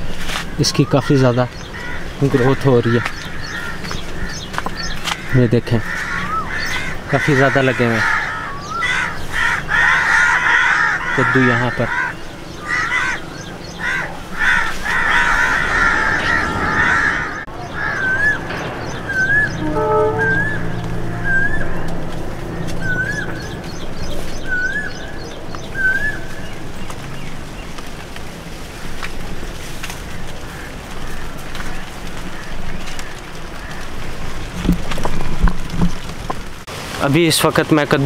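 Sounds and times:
birds calling: 0.0 - 36.6
rising-and-falling bird note: 14.6 - 26.5.

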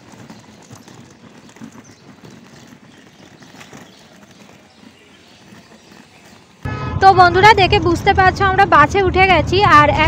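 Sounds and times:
suitcase wheels rattling on gravel: 0.0 - 6.7.

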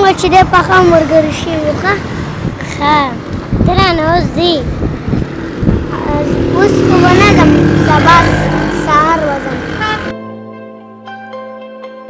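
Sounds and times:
road traffic: 0.0 - 11.1
person speaking: 5.8 - 10.1
vehicle horn toot: 9.7 - 10.2
soft music with sustained notes: 10.1 - 12.0.

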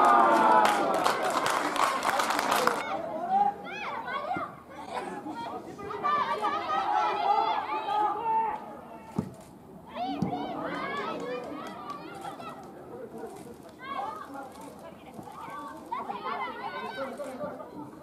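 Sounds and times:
thud: 9.1 - 9.4.

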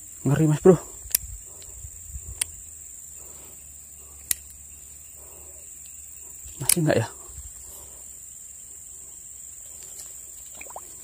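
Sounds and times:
high-pitched insect buzz: 0.0 - 11.0
sharp clicks: 1.0 - 2.6, 4.2 - 4.6, 6.5 - 6.9.

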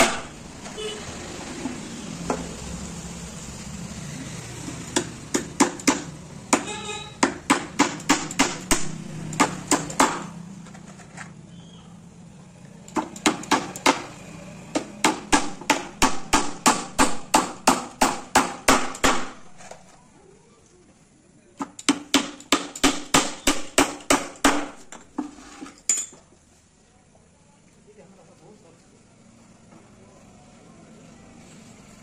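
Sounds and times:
hammer driving nails into plywood: 4.9 - 10.3, 12.9 - 14.1, 14.7 - 19.8, 21.6 - 25.0.

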